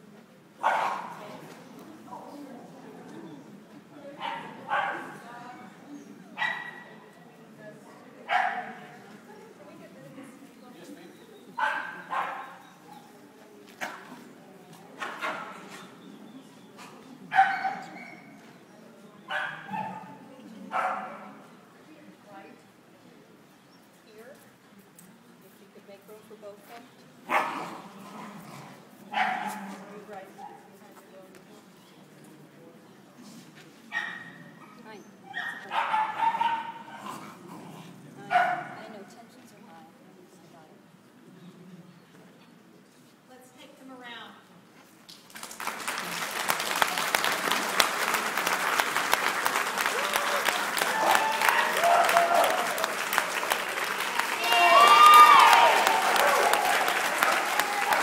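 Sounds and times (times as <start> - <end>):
low chatter in a large hall: 0.0 - 58.0
dog barking: 0.6 - 1.2, 4.2 - 5.2, 6.4 - 6.9, 8.3 - 8.8, 11.6 - 12.6, 17.3 - 18.2, 19.3 - 21.3, 27.3 - 27.7, 29.1 - 29.7, 33.9 - 34.4, 35.3 - 37.0, 38.3 - 38.8.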